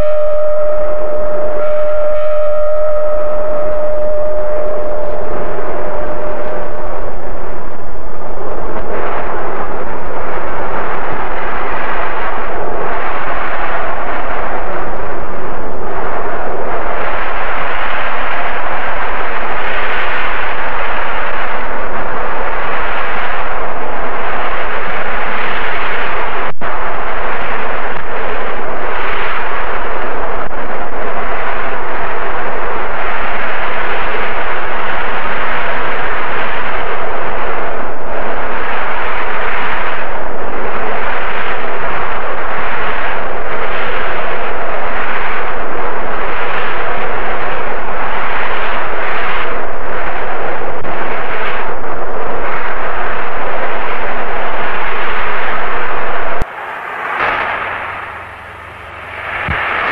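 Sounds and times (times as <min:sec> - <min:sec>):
wind: 0:00.0 - 0:59.9.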